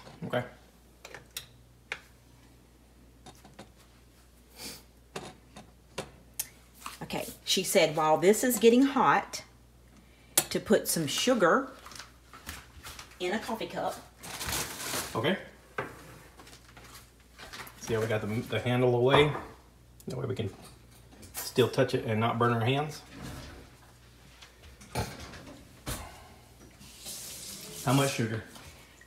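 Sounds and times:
man talking: 0:27.8 - 0:28.6.

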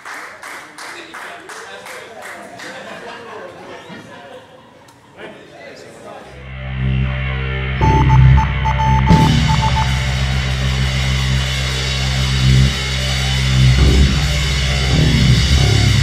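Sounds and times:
electric guitar sustained chords: 0:06.5 - 0:11.0
live rock band playing: 0:07.8 - 0:10.6.

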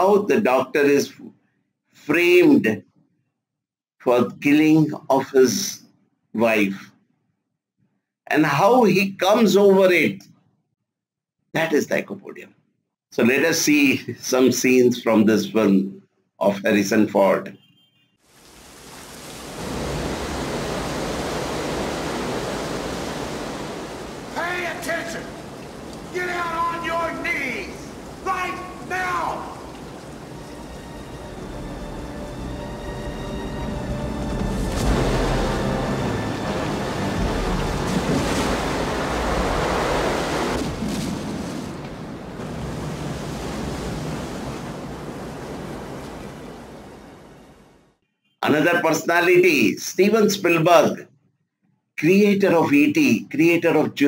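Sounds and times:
man's voice: 0:00.0 - 0:01.2, 0:04.1 - 0:05.8, 0:24.4 - 0:25.4, 0:26.1 - 0:29.7, 0:48.4 - 0:51.0
steady rushing noise: 0:18.5 - 0:40.6.

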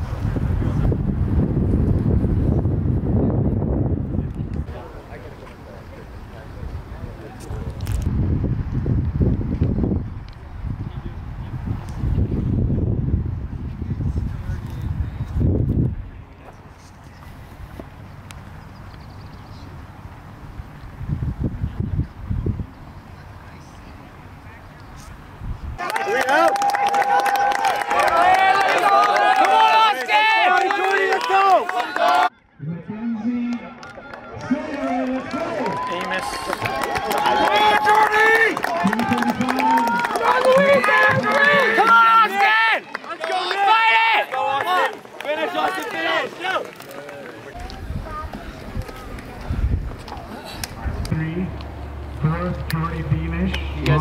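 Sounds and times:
wind buffeting microphone: 0:00.0 - 0:05.4, 0:06.0 - 0:18.1, 0:19.8 - 0:23.1, 0:47.5 - 0:54.0
people clapping: 0:25.8 - 0:32.3, 0:33.5 - 0:47.8
voices shouting encouragement: 0:25.8 - 0:32.3, 0:33.2 - 0:49.5
spectators yelling and cheering: 0:25.8 - 0:32.4, 0:33.3 - 0:51.6.

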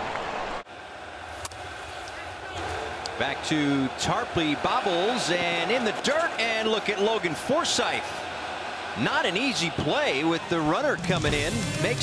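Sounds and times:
ballpark crowd ambience: 0:00.0 - 0:12.0.

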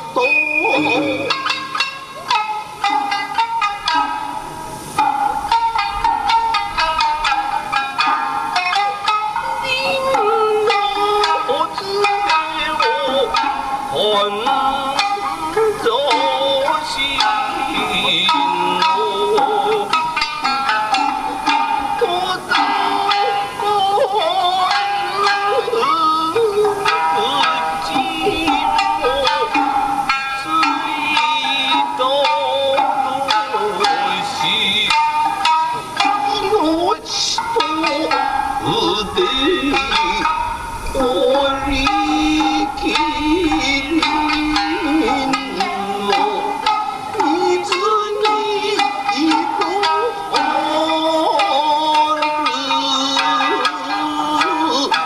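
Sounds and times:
instrumental accompaniment: 0:00.0 - 0:55.0
person singing wavering melody: 0:00.0 - 0:55.0.

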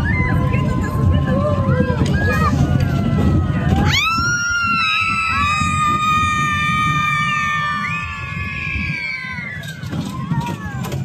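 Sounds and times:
people screaming: 0:00.0 - 0:11.0.

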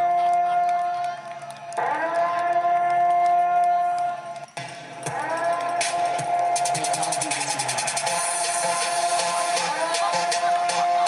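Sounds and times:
music with a beat: 0:00.0 - 0:11.0
air raid siren wailing: 0:01.8 - 0:04.1, 0:05.1 - 0:10.0.

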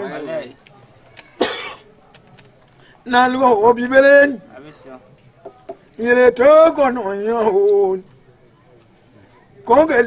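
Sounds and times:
man coughing: 0:01.4 - 0:01.8.

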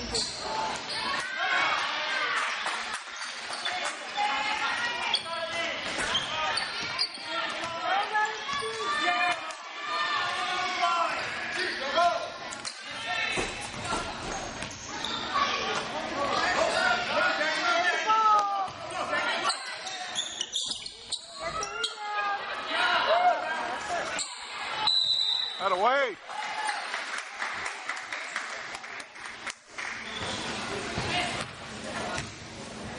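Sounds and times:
voices of spectators and players: 0:00.0 - 0:32.9.

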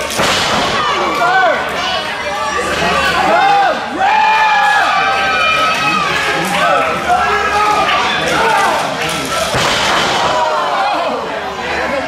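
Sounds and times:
body crashing onto ring boards: 0:09.5 - 0:10.5.

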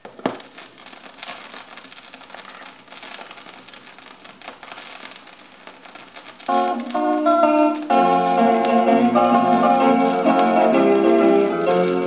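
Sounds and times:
faint hiss: 0:00.0 - 0:12.0
vinyl crackles and pops: 0:00.0 - 0:12.0.

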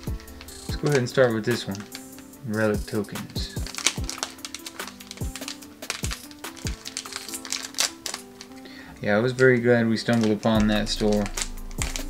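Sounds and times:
background music with kick drums: 0:00.0 - 0:07.5, 0:10.5 - 0:12.0
foil pack being torn open: 0:00.0 - 0:12.0.

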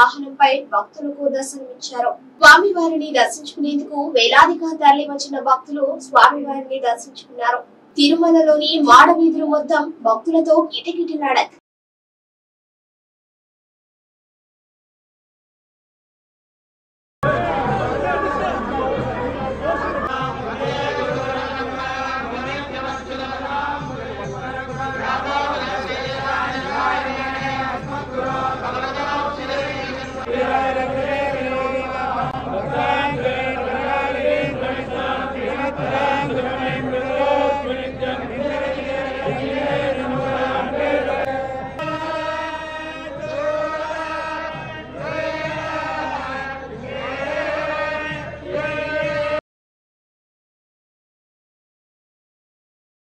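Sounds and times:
men chanting in unison: 0:17.3 - 0:49.4.

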